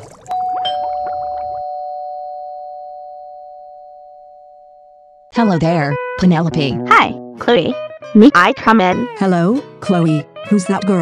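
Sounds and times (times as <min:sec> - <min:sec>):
two-note doorbell chime: 0:00.3 - 0:05.3.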